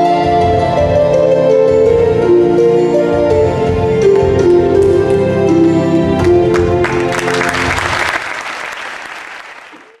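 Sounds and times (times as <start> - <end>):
music with sustained notes: 0.0 - 8.4
audience applause: 6.2 - 10.0.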